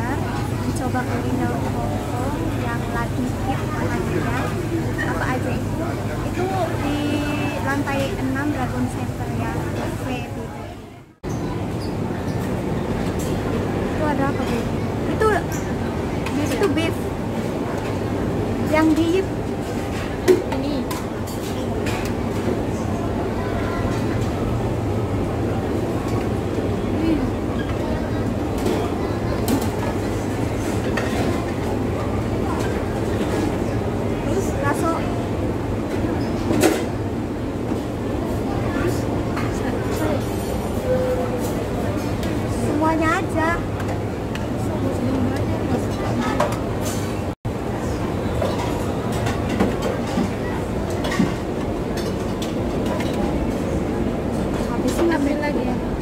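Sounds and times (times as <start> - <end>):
background chatter: 0.0 - 56.0.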